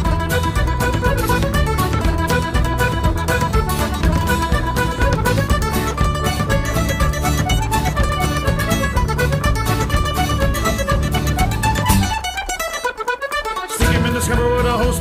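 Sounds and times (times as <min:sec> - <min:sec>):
steady bass: 0:00.0 - 0:12.3, 0:13.8 - 0:15.0
folk band instrumental melody: 0:00.0 - 0:15.0.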